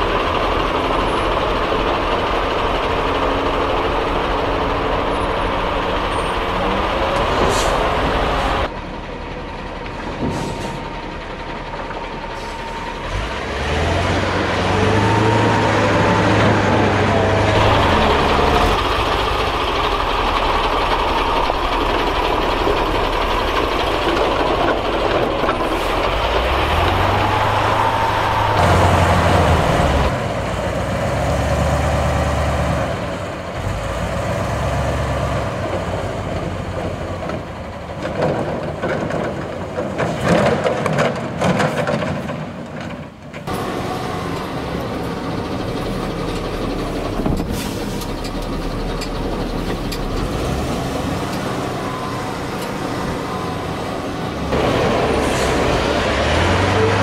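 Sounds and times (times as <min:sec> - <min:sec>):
diesel truck engine under load: 0:00.0 - 0:57.0.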